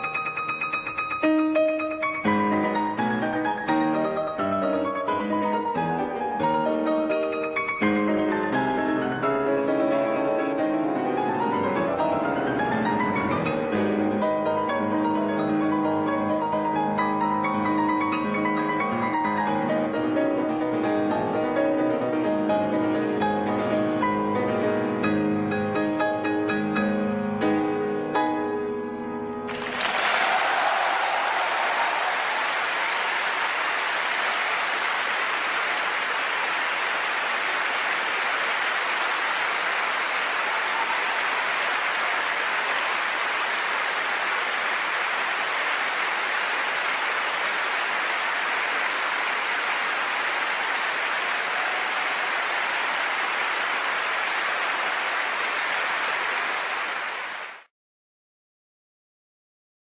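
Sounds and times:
audience applauding: 0:29.4 - 0:57.7.

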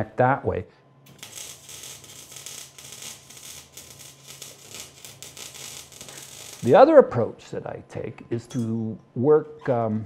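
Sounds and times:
welding arc crackling: 0:01.1 - 0:06.9.

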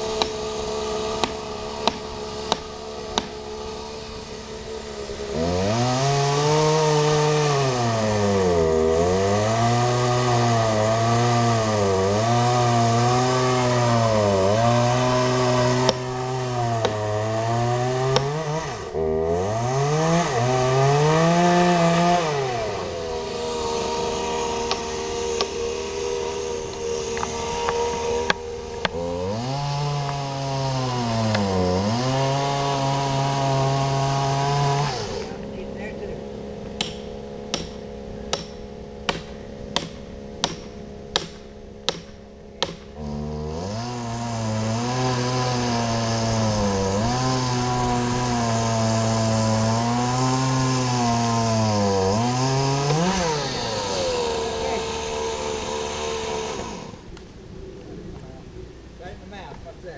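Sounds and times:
chainsaw cutting wood: 0:00.0 - 0:57.3.

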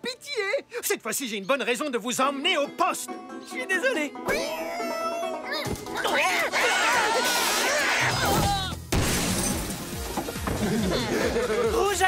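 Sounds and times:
background music: 0:00.0 - 0:12.0
glass window shattering: 0:08.3 - 0:10.8.

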